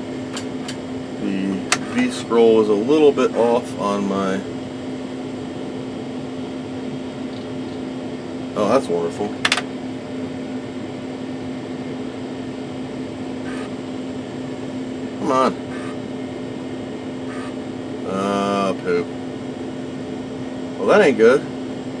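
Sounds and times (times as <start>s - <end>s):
computer equipment humming: 0.0s - 22.0s.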